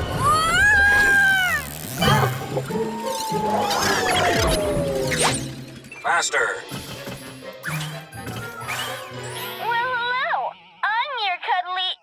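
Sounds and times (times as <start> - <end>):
cartoon music: 2.0 - 6.3.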